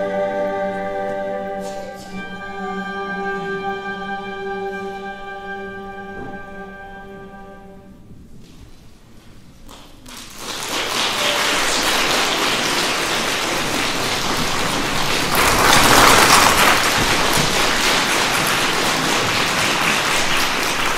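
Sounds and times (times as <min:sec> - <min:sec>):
audience applause: 0:09.7 - 0:20.9.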